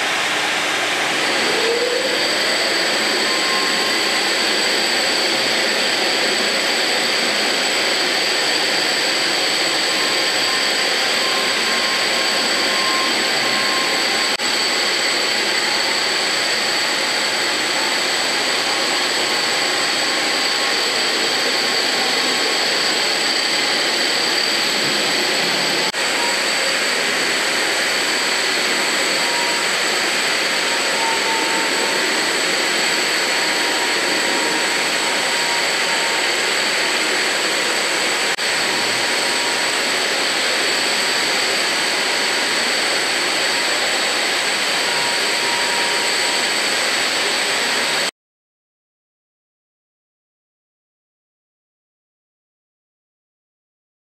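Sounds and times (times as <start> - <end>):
concrete grinder grinding floor: 0.0 - 48.1
dust extraction vacuum: 0.0 - 48.1.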